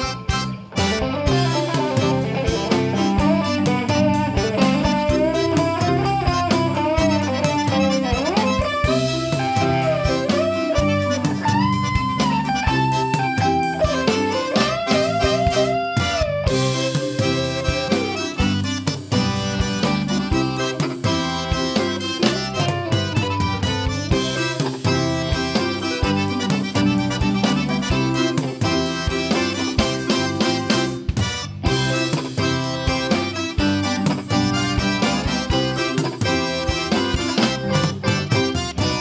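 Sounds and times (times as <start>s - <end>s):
electric guitar lead with bends: 0.0s - 39.0s
live band playing: 0.0s - 39.0s.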